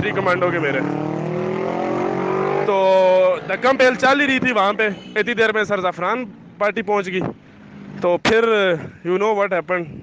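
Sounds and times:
engine speeding up: 0.0s - 3.8s.

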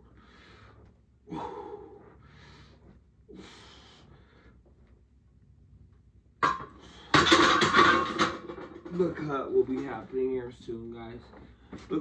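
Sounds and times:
metal clanking and rattling: 6.4s - 10.2s.

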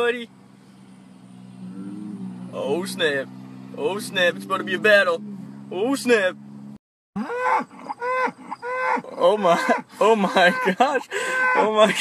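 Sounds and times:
cow mooing: 1.4s - 5.4s, 7.2s - 11.8s.

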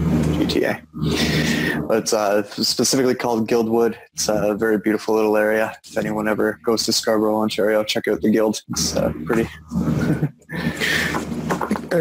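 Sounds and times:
man laughing: 9.5s - 11.9s.

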